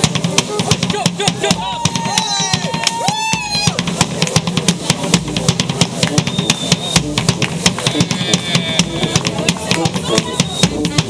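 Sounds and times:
drums beating quick rhythm: 0.0s - 11.0s
higher horn notes: 5.1s - 11.0s.

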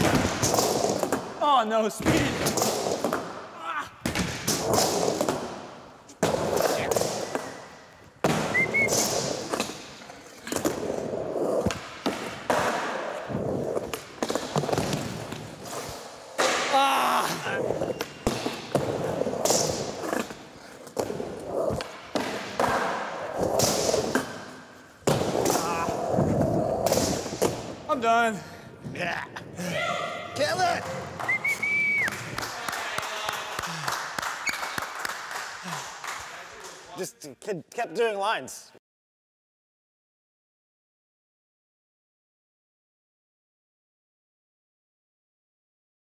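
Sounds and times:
skateboard wheels rolling: 8.3s - 16.6s, 17.5s - 27.8s.

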